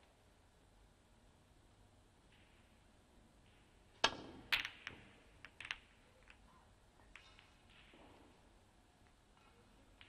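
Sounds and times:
snooker balls clicking together: 0:03.4 - 0:10.0
cue striking cue ball: 0:04.0 - 0:05.8.

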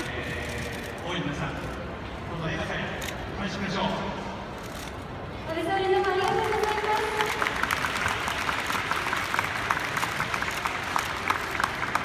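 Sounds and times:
man speaking over loudspeakers: 0:00.0 - 0:04.4.

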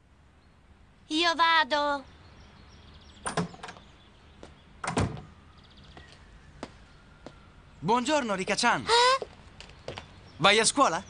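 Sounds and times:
door clunking shut: 0:03.2 - 0:03.9, 0:04.8 - 0:05.3.

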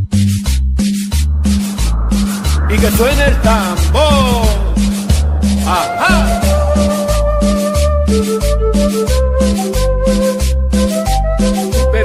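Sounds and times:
bass line: 0:00.0 - 0:11.3.

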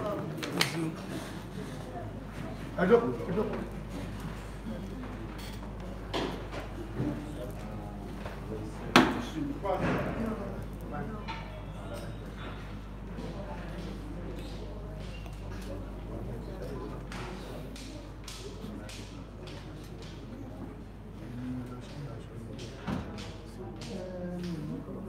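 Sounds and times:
people talking: 0:00.0 - 0:25.0.

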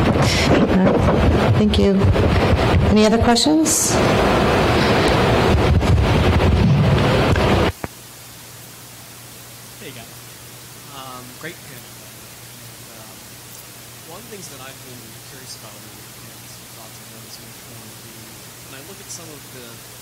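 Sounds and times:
loud rough hiss over sound system: 0:00.0 - 0:20.0
low steady hum: 0:00.0 - 0:20.0.

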